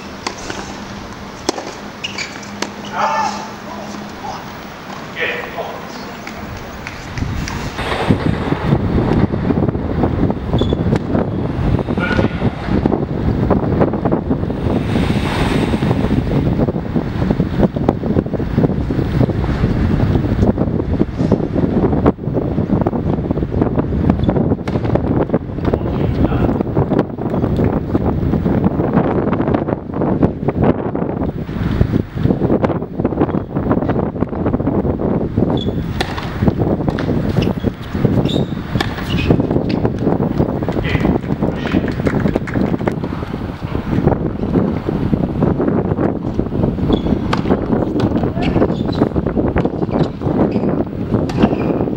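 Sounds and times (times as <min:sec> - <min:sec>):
wind buffeting microphone: 0:00.0 - 0:51.9.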